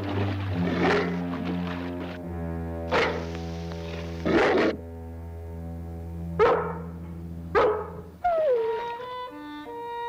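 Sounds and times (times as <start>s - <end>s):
background music chord: 0.0s - 10.0s
dog barking: 0.8s - 1.2s, 2.9s - 3.2s, 4.3s - 4.8s, 6.4s - 6.9s, 7.6s - 8.0s.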